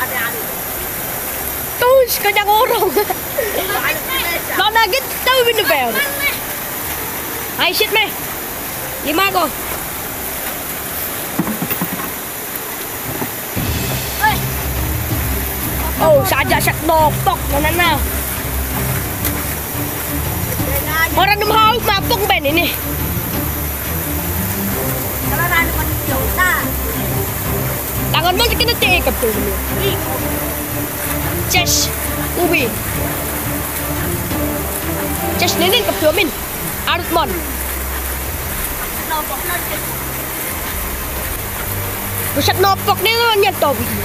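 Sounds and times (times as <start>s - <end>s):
river rapids rushing: 0.0s - 44.0s
boat motor running: 13.6s - 40.2s.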